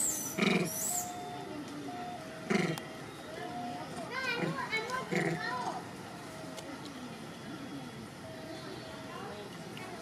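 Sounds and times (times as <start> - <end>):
high-pitched vocal calls: 0.0 - 1.4.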